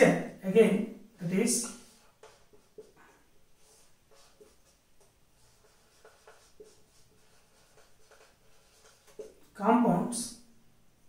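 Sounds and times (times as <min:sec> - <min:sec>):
marker pen writing on whiteboard: 0:01.2 - 0:09.8.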